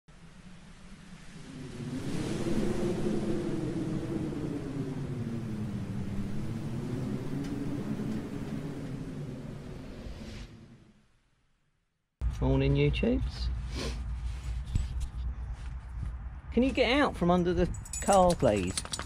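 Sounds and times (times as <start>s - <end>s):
low wavering drone: 0.1s - 11.2s.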